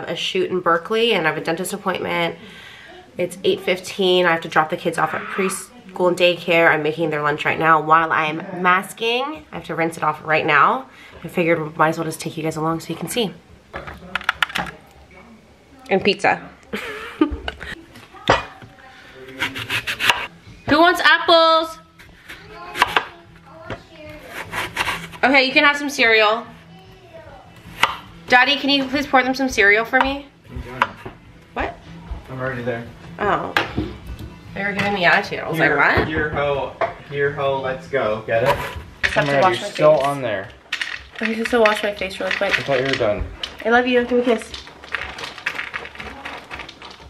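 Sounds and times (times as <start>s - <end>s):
knife slicing through apple: 19.3s - 20.3s, 24.2s - 25.2s.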